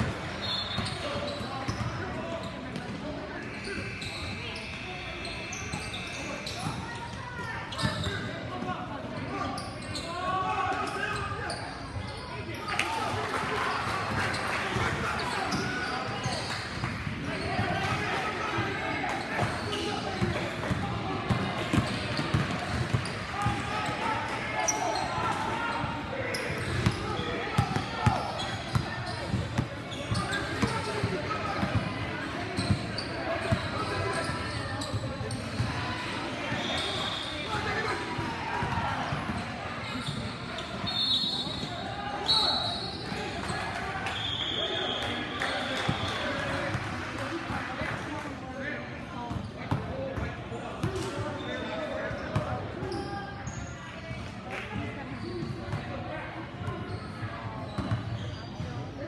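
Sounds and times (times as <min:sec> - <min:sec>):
voices of players and onlookers: 0:00.0 - 0:59.0
basketball bouncing on court: 0:20.2 - 0:23.6, 0:27.6 - 0:31.9.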